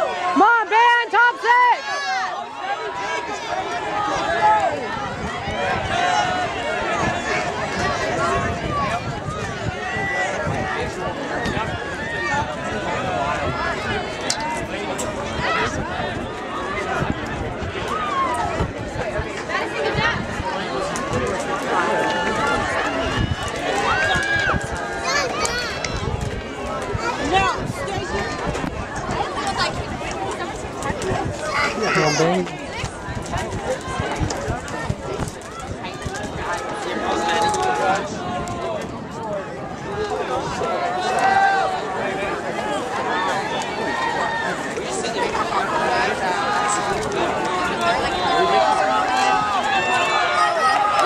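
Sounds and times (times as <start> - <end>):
people talking and calling out: 0.0 - 51.0.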